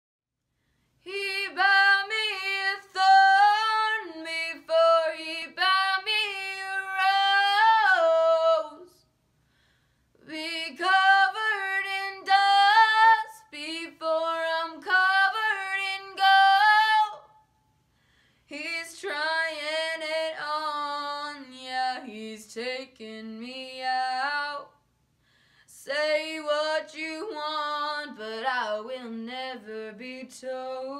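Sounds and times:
girl singing unaccompanied: 0:01.1 - 0:09.0, 0:10.2 - 0:17.3.

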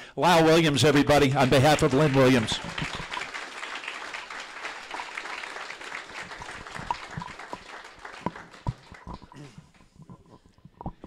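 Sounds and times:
audience applauding: 0:00.9 - 0:09.9.

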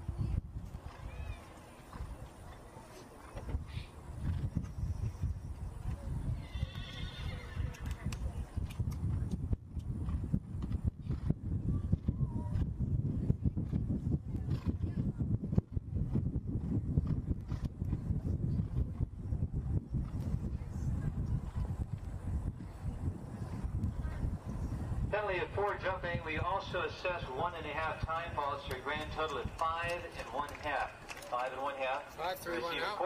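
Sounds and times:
horse whinny: 0:06.4 - 0:07.8.

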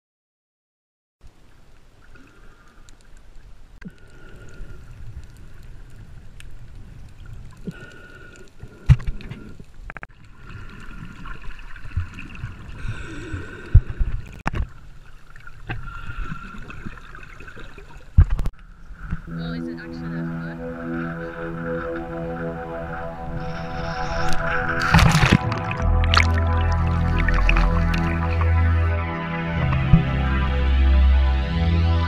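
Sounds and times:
muffled underwater gurgling: 0:19.1 - 0:30.5.

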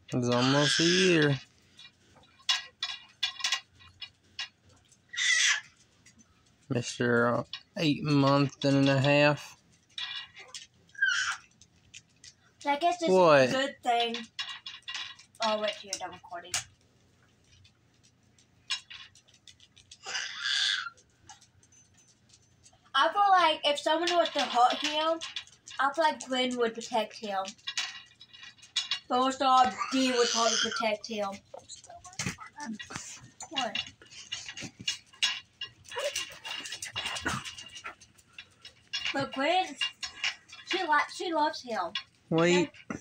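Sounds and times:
wooden beads clicking: 0:00.1 - 0:22.9.

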